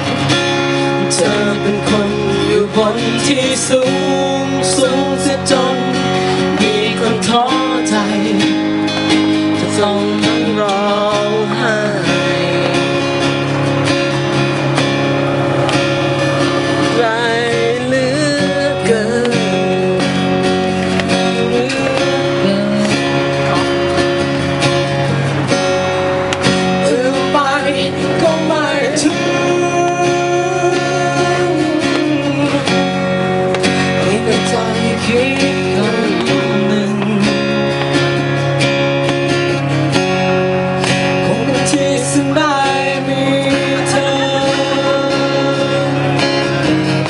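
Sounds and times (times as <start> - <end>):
strummed acoustic guitar: 0.0 - 47.0
man singing into microphone: 0.7 - 13.4, 16.8 - 20.4, 21.1 - 24.0, 26.6 - 38.2, 41.0 - 47.0.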